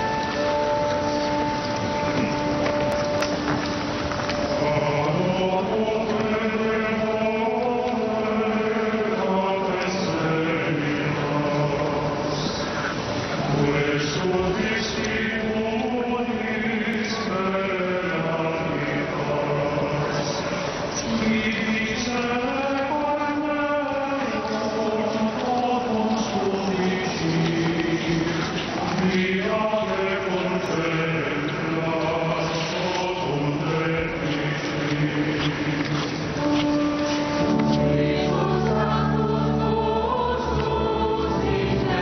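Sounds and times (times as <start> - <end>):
choir singing a chant: 4.6 - 42.0.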